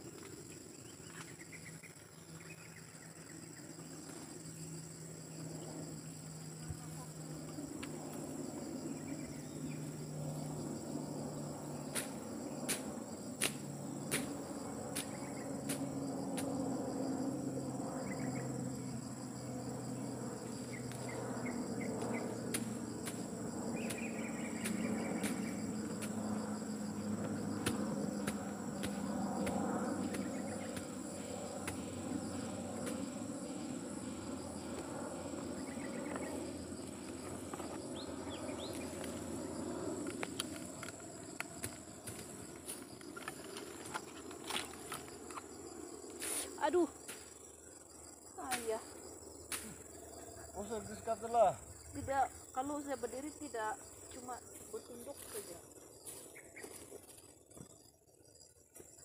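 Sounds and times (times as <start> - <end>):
insects chirring: 0.0 - 59.0.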